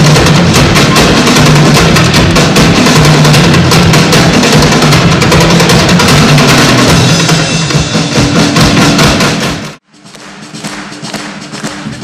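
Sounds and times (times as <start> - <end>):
drum kit with cymbals: 0.0 - 12.0.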